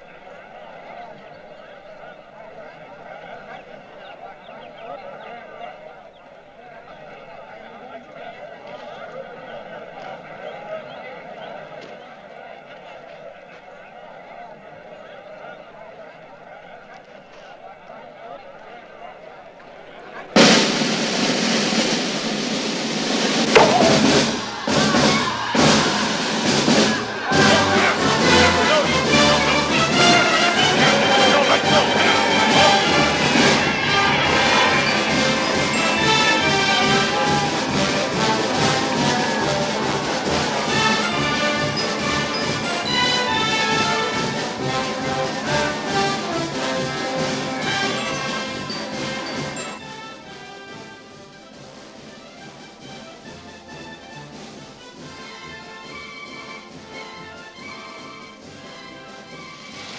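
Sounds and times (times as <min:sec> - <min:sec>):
faint background voices: 0:00.0 - 0:21.0, 0:26.9 - 0:53.3
orchestral music with brass: 0:20.4 - 0:59.9
sharp percussive hits: 0:23.5 - 0:24.7.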